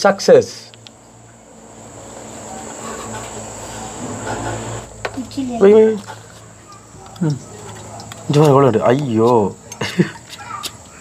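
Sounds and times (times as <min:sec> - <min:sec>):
cricket chirring: 0:00.1 - 0:11.0.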